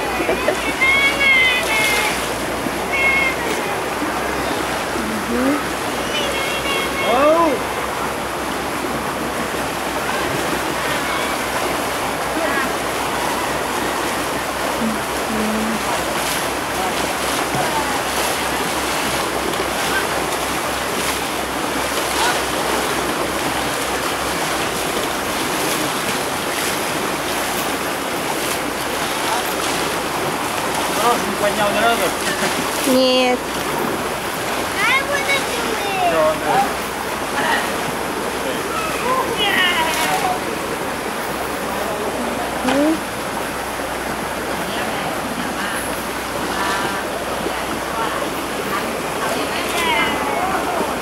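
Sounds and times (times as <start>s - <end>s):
voices: 0.0s - 51.0s
water splashing and churning: 0.0s - 51.0s.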